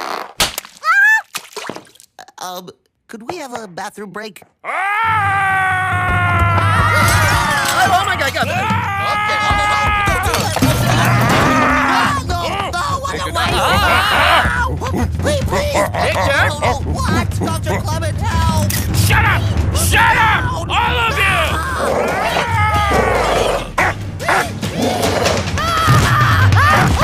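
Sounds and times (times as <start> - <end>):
cartoon gorilla roaring: 8.9 - 12.2, 13.5 - 16.8, 21.5 - 25.9
dog barking: 23.8 - 24.5.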